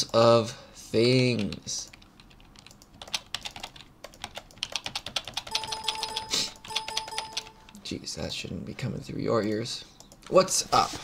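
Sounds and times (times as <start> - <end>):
keyboard keys tapping: 1.4 - 7.8.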